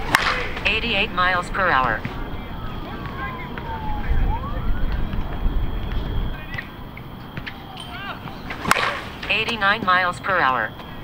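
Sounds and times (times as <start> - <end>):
bat striking softball: 0.0 - 4.2, 4.8 - 10.1
faint wailing tone: 0.0 - 11.0
low outdoor rumble: 0.0 - 11.0.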